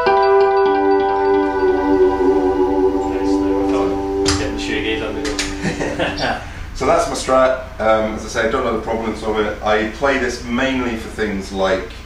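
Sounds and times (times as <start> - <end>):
electric guitar chord ringing: 0.0 - 6.8.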